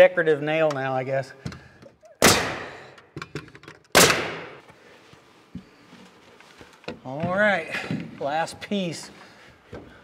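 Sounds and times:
pneumatic nailer firing: 0:02.2 - 0:02.9, 0:03.9 - 0:04.6.

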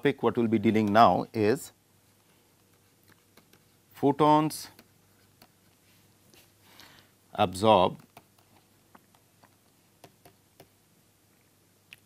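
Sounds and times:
stylus tapping a tablet: 0:03.0 - 0:03.7, 0:08.0 - 0:10.8.

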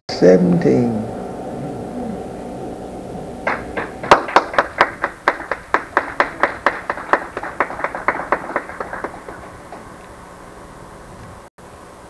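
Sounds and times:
hand clapping: 0:03.4 - 0:09.9.

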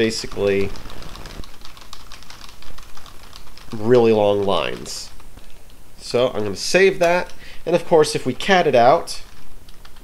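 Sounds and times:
fast keyboard typing: 0:00.0 - 0:05.3, 0:07.0 - 0:07.4, 0:09.2 - 0:10.0.

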